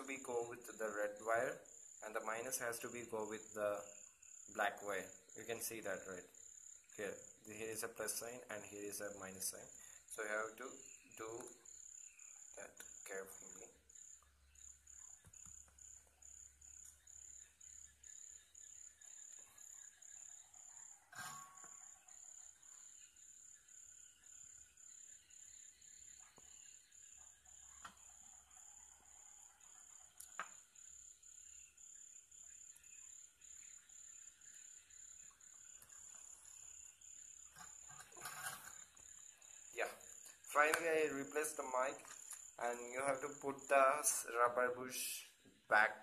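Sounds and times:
faint high-pitched chirp: 0.0 - 46.0.

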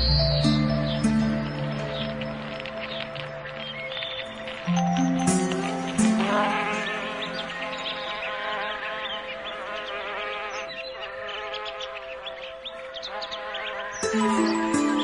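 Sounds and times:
small birds chirping: 0.0 - 15.0
soft relaxation music: 0.0 - 15.0.

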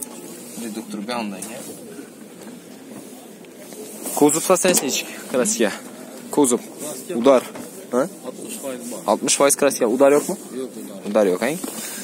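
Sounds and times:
faint voices: 0.0 - 12.0
steady hissing noise: 0.0 - 12.0.

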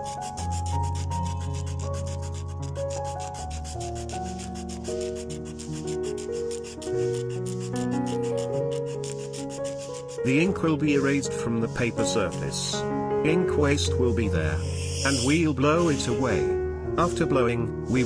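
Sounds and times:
razor blade scraping paper: 0.0 - 12.7
soft background music: 0.0 - 18.0.

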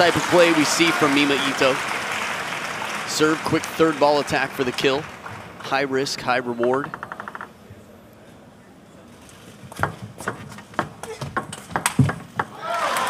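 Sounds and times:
crowd applause: 0.0 - 6.0, 12.5 - 13.0.

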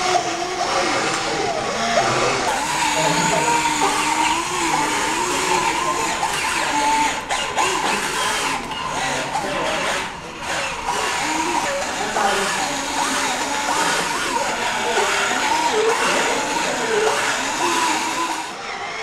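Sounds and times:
crowd chatter: 0.0 - 19.0
electric motor whir: 0.0 - 19.0.

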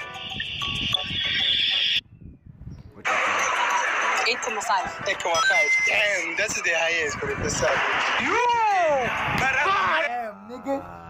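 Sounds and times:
music with steady tones: 0.0 - 2.0
voices talking: 2.8 - 11.0.

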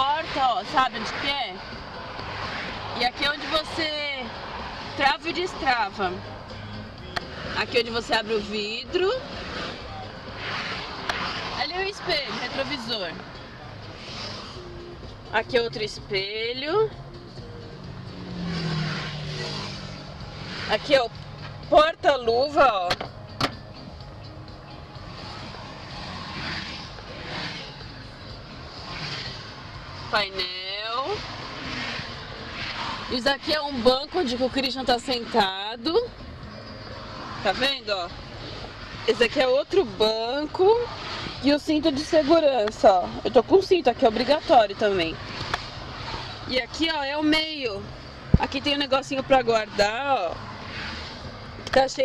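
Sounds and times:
car cabin road and engine noise: 0.0 - 52.0.

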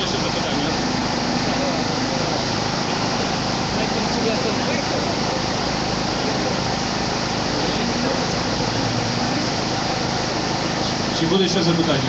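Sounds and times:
loud hiss-like background noise: 0.0 - 12.0.

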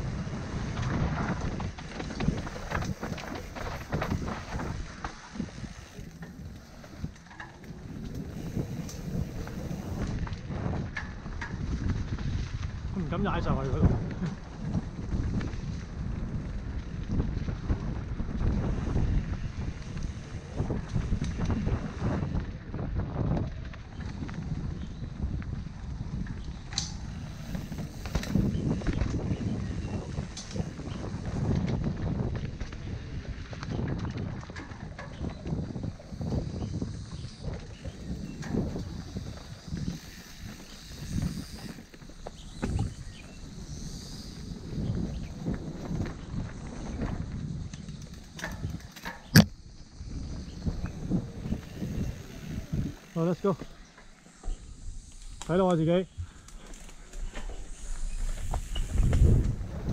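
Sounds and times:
bike knocking and rattling: 0.0 - 59.9
wind buffeting microphone: 0.0 - 59.9.

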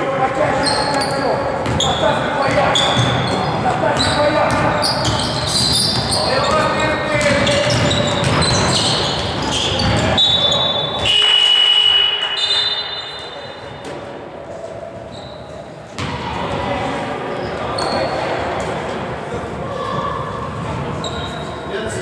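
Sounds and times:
players' voices: 0.0 - 22.0
basketball bouncing on hardwood: 7.2 - 10.2
referee's whistle blast: 9.6 - 13.6.

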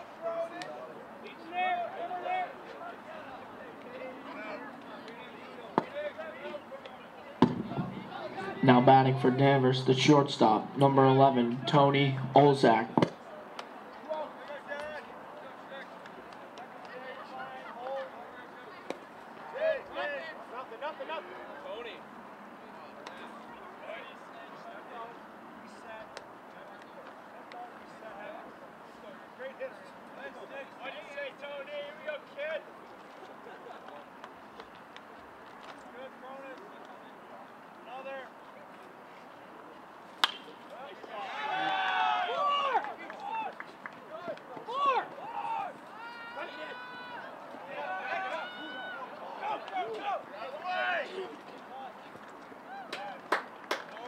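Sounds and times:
voices shouting: 0.0 - 12.9, 40.2 - 52.0
voices calling: 0.0 - 54.0
bat hitting ball: 7.4 - 8.2, 40.2 - 40.7.

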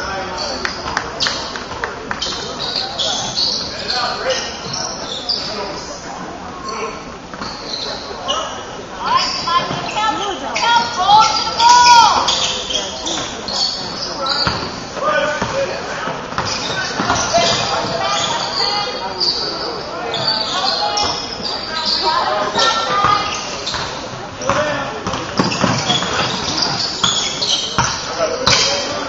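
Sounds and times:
players calling out: 0.0 - 29.0
sneaker squeaks: 0.0 - 29.0
basketball bouncing on floor: 24.5 - 27.2.

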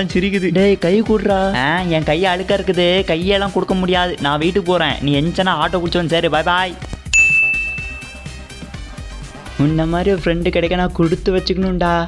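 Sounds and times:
bell-like chime ding: 7.2 - 8.5.

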